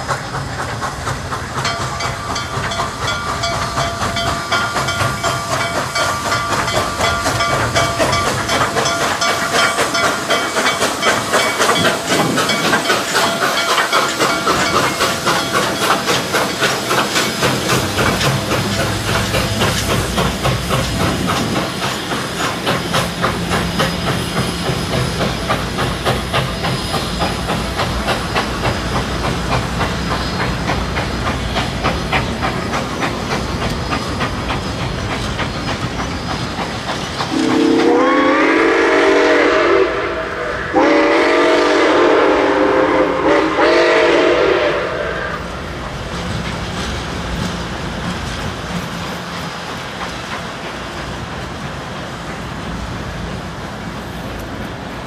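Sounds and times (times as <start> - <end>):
steam locomotive hissing steam: 0.0 - 55.0
train wheels clicking over rail joints: 0.0 - 55.0.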